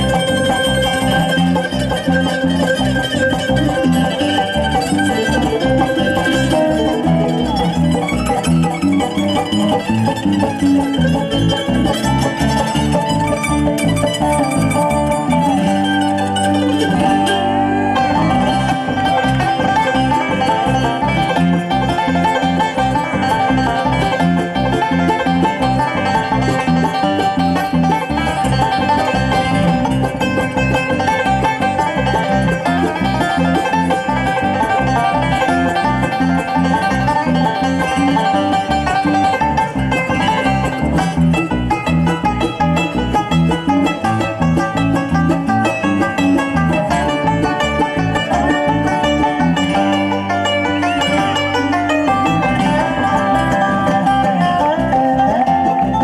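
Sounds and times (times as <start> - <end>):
banjo picking: 0.0 - 56.0
bluegrass band instrumental: 0.0 - 56.0
mandolin picking: 0.0 - 56.0.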